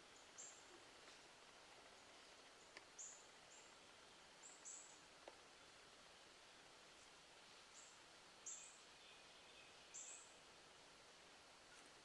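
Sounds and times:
soft ticks: 2.4s - 2.9s
faint high bird chirps: 7.7s - 10.4s.

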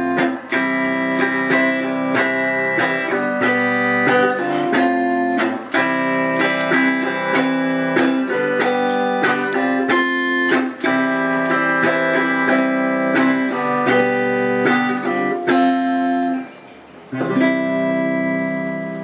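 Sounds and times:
acoustic guitar fingerstyle: 0.0s - 19.0s.

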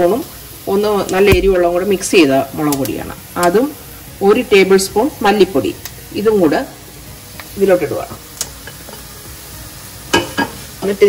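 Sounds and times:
spices sizzling in oil: 0.0s - 11.0s.

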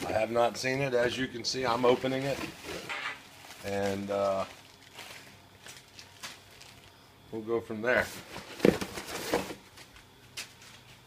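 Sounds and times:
cardboard rustling and scraping: 1.6s - 6.9s, 8.0s - 11.0s.

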